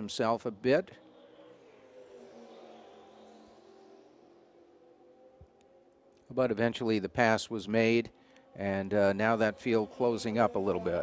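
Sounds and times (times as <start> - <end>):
distant race car engines: 0.0 - 11.0.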